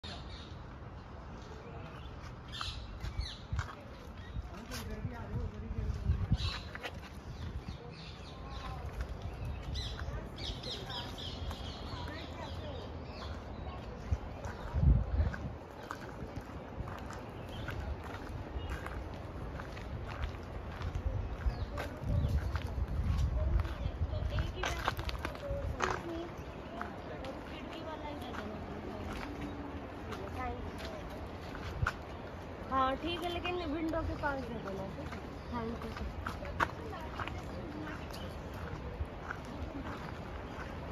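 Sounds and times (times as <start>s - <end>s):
people's voices: 0.0s - 40.9s
footsteps on dirt path: 1.4s - 40.9s.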